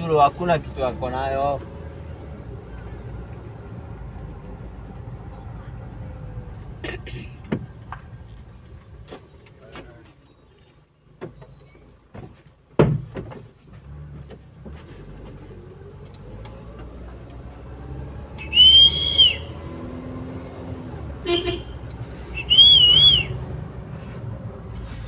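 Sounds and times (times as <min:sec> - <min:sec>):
car engine and road noise: 0:00.0 - 0:25.0
high whistled notes: 0:18.4 - 0:19.6, 0:22.4 - 0:23.4.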